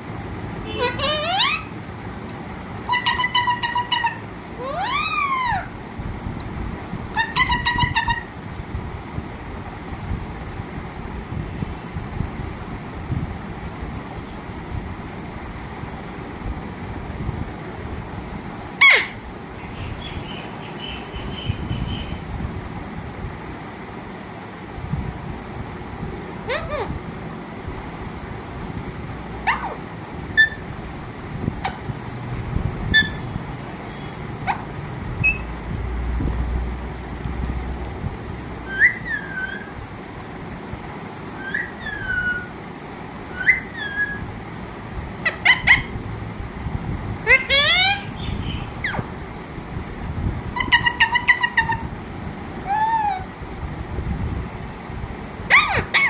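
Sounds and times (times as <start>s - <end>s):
steady background noise: 0.0s - 56.0s
parakeet calling: 0.6s - 1.8s, 2.8s - 5.8s, 7.1s - 8.4s, 18.8s - 22.3s, 26.4s - 27.0s, 29.4s - 30.7s, 32.9s - 35.6s, 38.6s - 39.8s, 41.3s - 42.6s, 43.2s - 44.3s, 45.2s - 46.0s, 47.2s - 49.2s, 50.5s - 51.9s, 52.6s - 53.3s, 55.5s - 56.0s.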